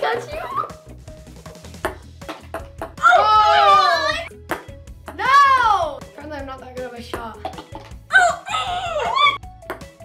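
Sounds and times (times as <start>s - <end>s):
background music: 0.0s - 10.0s
ping pong ball bouncing on table: 1.8s - 3.0s, 4.5s - 5.2s, 9.6s - 9.9s.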